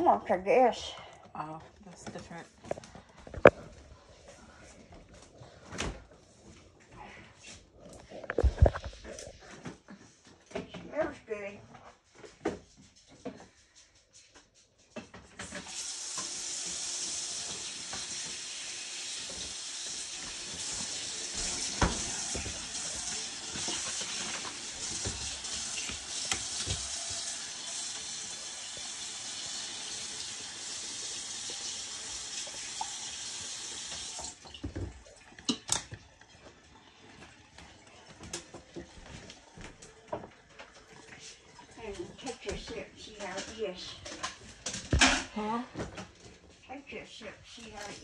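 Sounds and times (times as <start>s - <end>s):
tap water running into sink: 15.4s - 44.4s.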